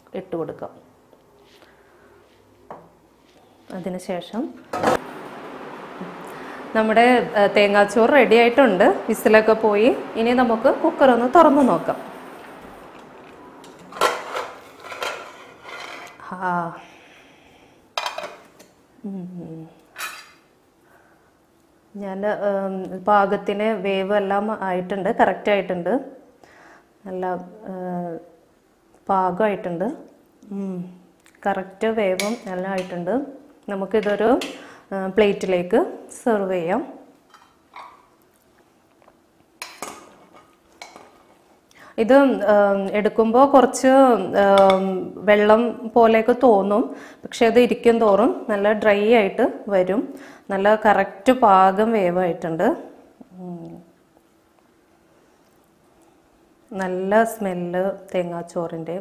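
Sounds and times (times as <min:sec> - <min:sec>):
metal spoon scraping a pot: 0:13.7 - 0:16.2.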